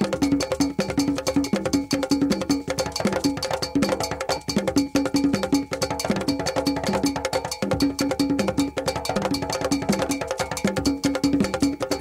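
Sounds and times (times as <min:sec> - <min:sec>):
bell-like percussion strikes: 0:00.0 - 0:12.0.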